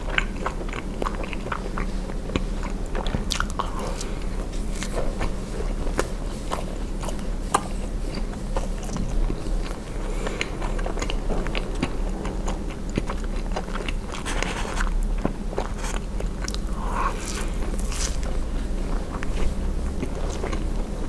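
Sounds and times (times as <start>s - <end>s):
chewing marshmallow: 0.0s - 21.0s
soft sticky scrape: 14.1s - 15.0s.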